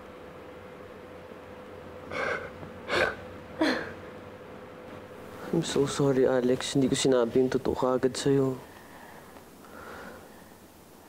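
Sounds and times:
woman sobbing: 2.1 - 4.0.

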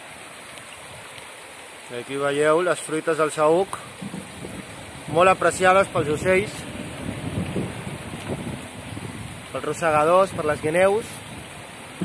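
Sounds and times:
wind buffeting microphone: 3.8 - 12.0.

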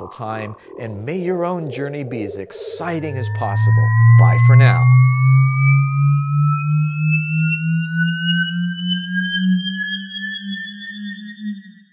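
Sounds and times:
low pulsing synth drone: 0.0 - 10.4
thin whistling tones gliding upward: 0.0 - 11.8.

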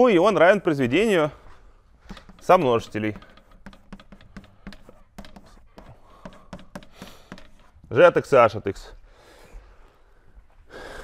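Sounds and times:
chalk on blackboard: 2.1 - 7.9.

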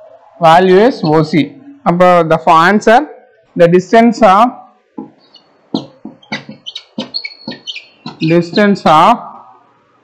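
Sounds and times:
stylus ticking on tablet: 5.0 - 8.8.

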